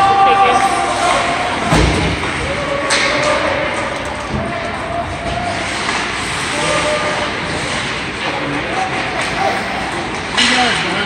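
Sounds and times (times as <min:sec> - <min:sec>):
skates scraping ice: 0:00.4 - 0:11.0.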